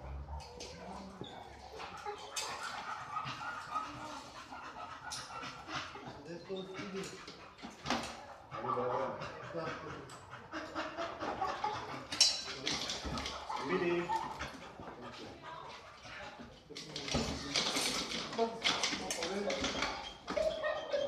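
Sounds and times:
dog panting: 0.0 - 21.0
people chatting indistinctly: 0.5 - 21.0.

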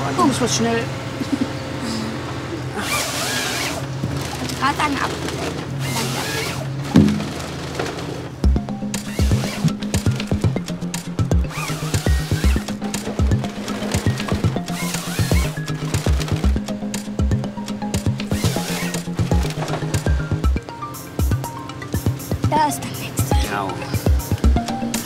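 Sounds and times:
harvester engine running: 0.0 - 25.0
music with steady beat: 8.4 - 25.0.

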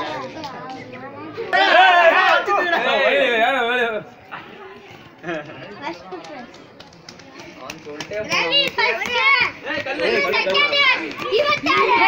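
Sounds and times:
children shouting: 1.4 - 3.6, 8.3 - 12.0
children laughing: 4.3 - 6.0, 9.2 - 12.0.

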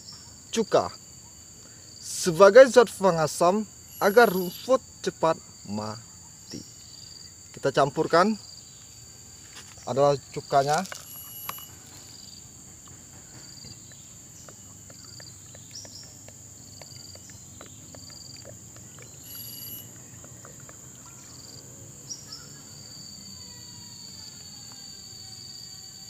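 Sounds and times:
high-pitched insect buzzing: 2.8 - 5.0, 10.5 - 12.5, 13.4 - 26.0.

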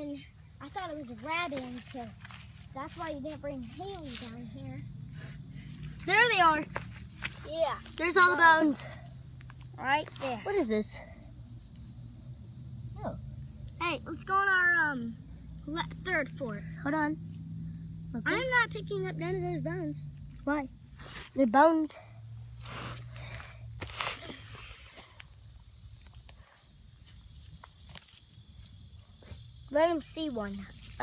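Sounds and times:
insects trilling: 0.0 - 31.0
dry leaves and grass rustling: 0.6 - 4.8, 5.6 - 10.6, 22.5 - 29.4, 30.0 - 31.0.

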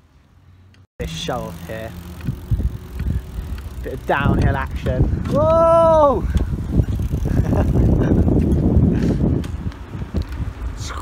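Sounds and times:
bike rolling over tarmac: 1.0 - 10.7
wind buffeting microphone: 1.6 - 11.0
person speaking: 3.2 - 6.3.

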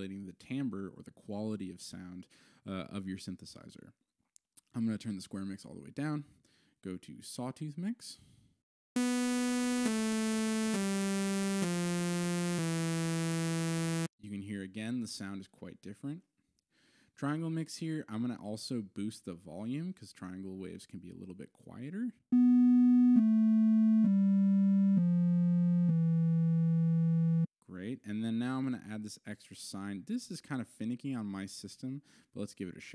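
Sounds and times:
sawtooth synthesizer notes: 9.0 - 14.1, 22.4 - 27.5.

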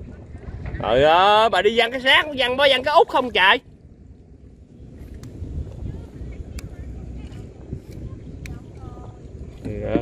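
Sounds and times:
boat engine rumble: 0.0 - 10.0.

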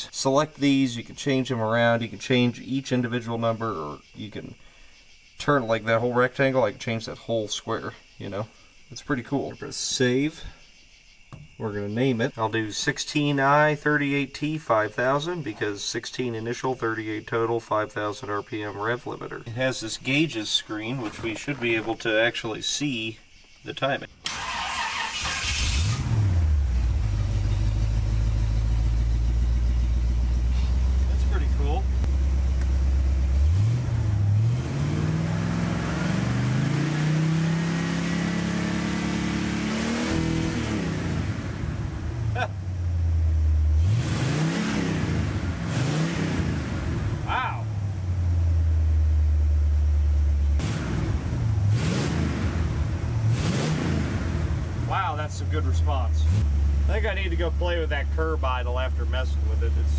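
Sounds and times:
car engine idling and revving: 24.2 - 59.9
engine throttle blips: 24.2 - 59.9.

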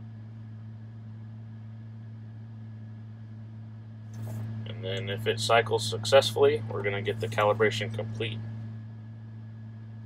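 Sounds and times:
low hum inside combine cab: 0.0 - 10.0.

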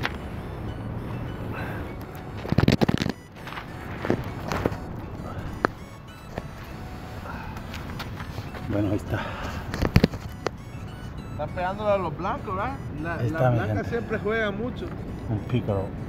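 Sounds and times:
phone handling knocks and scrapes: 9.7 - 10.6.

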